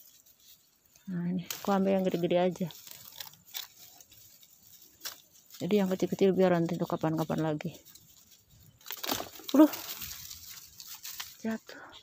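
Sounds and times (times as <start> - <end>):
plant leaves rustling: 0.0 - 12.0.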